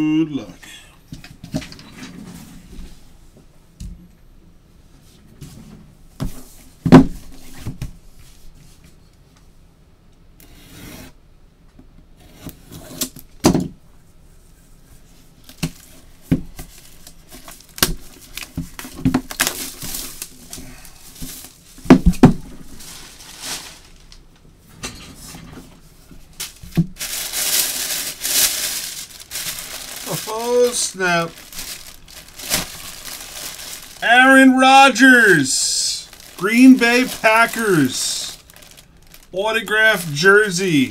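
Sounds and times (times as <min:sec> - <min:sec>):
plastic bag crinkling: 0:22.6 - 0:24.2, 0:26.4 - 0:34.3, 0:34.9 - 0:40.9.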